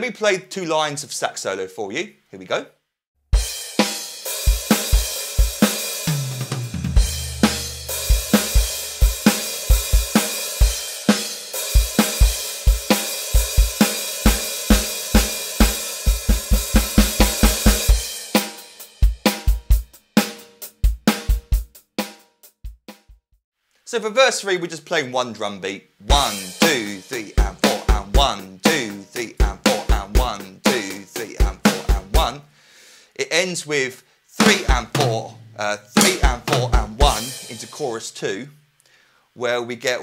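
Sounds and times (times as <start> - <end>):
electronic drum kit rock beat: 3.4 - 23.2, 26.1 - 32.4, 34.4 - 35.3, 36.0 - 37.9
tom drum fill: 3.4 - 23.2, 26.1 - 32.4, 34.4 - 37.8.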